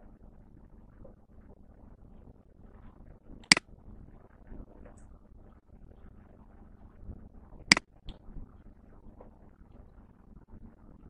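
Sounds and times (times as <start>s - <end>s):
faint low background noise: 0.0s - 11.0s.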